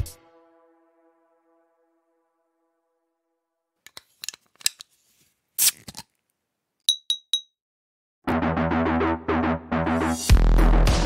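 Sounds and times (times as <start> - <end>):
glassy clinks: 6.9 - 7.6.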